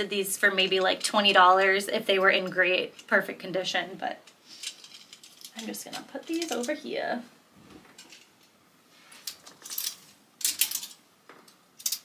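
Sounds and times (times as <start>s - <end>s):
clothes hangers clattering on rail: 4.5s - 6.8s.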